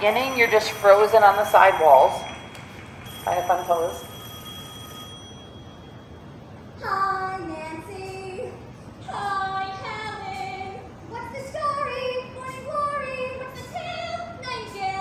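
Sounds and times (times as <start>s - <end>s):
girls singing show tune: 6.7s - 15.0s.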